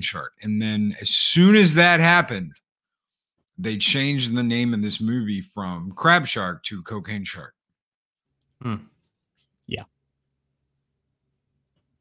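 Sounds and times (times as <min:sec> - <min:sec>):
brief vocal sound: 0:08.6 - 0:08.9
man humming hmm: 0:08.6 - 0:08.9.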